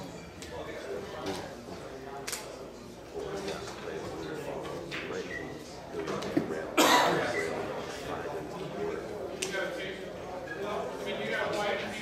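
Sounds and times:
murmur of voices: 0:00.0 - 0:12.0
loud cough: 0:06.8 - 0:07.4.

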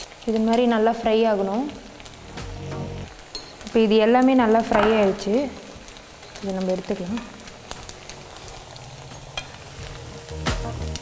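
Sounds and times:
food deep-frying in oil: 0:00.0 - 0:11.0.

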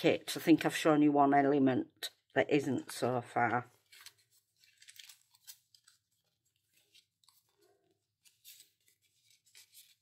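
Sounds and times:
faint paper rustles: 0:02.9 - 0:10.0.

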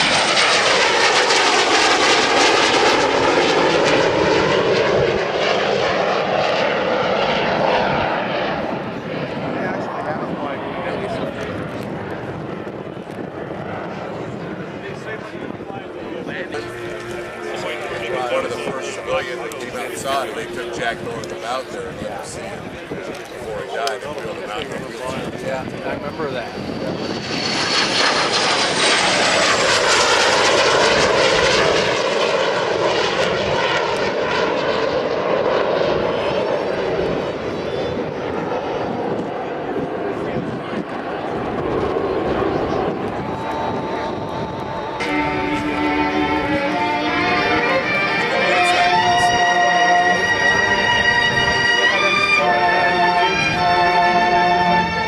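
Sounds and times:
jet engines rushing: 0:00.0 - 0:55.0.

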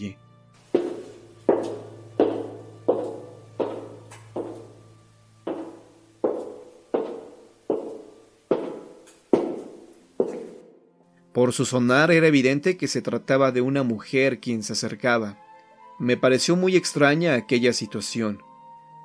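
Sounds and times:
high heels on cobblestones: 0:00.6 - 0:04.9, 0:05.5 - 0:10.7.

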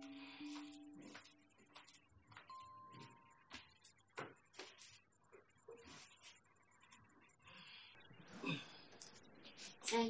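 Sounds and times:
background music: 0:00.0 - 0:01.8
soft steady high tone: 0:00.0 - 0:04.0
faint footsteps on hard floor: 0:00.0 - 0:07.0.

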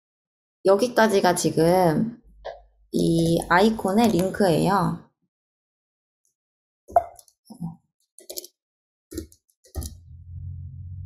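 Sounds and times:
computer keys tapping: 0:03.2 - 0:04.4, 0:09.1 - 0:10.0.

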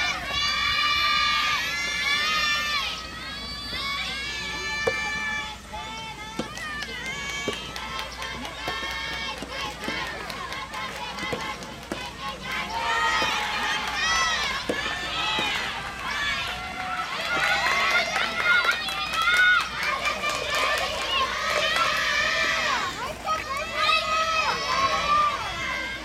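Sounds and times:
shouted calls and cheers: 0:00.0 - 0:26.0
rackets hitting rubber ball: 0:04.8 - 0:05.2, 0:11.2 - 0:12.1, 0:14.4 - 0:15.7.

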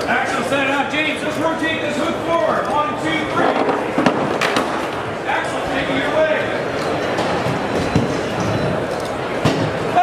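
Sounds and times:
noisy crowd: 0:00.0 - 0:10.0.

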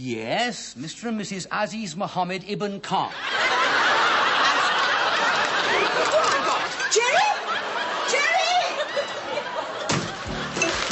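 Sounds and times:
studio audience laughing: 0:03.1 - 0:10.9.

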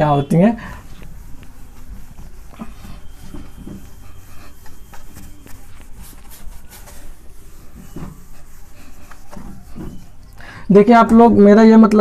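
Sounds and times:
duster rubbing on whiteboard: 0:00.0 - 0:11.8.

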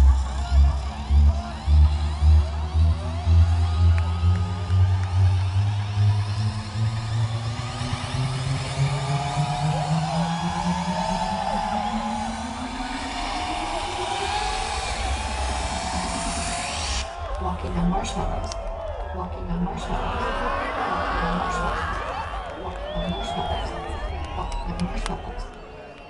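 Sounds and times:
heavy bass line: 0:00.0 - 0:25.4
electronic dance music: 0:00.0 - 0:26.0.

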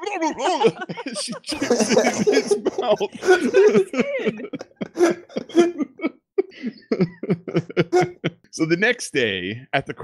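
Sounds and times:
person coughing: 0:01.5 - 0:03.9, 0:04.8 - 0:06.0, 0:07.9 - 0:08.2.

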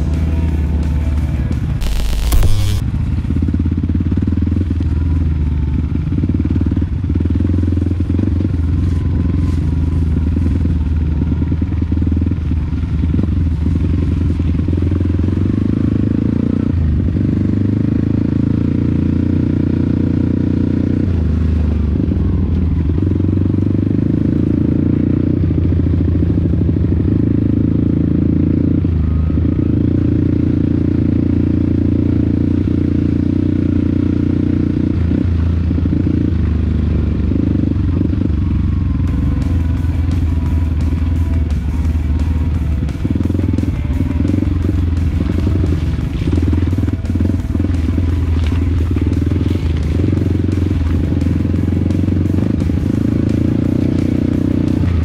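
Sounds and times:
motorcycle engine revving: 0:00.0 - 0:55.0
motorcycle clattering over rough ground: 0:39.2 - 0:55.0.

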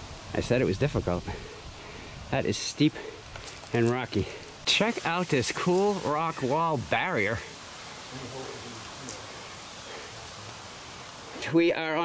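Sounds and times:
woodland ambience hiss: 0:00.0 - 0:12.0
light rustling: 0:03.0 - 0:06.4.

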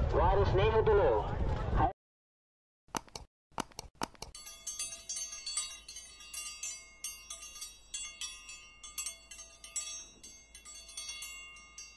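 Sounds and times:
ringing metallic chimes: 0:04.3 - 0:11.9.

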